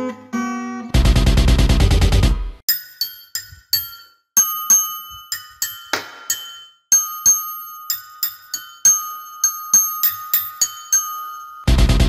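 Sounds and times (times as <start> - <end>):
spanner striking metal wrenches: 2.7 - 11.7.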